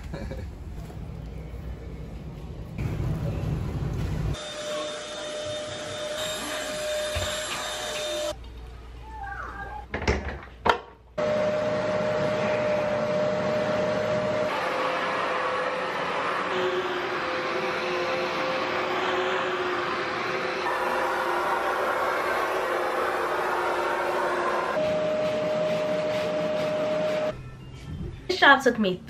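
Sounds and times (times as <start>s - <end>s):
carpet cleaner motor whining: 11.2s - 27.3s.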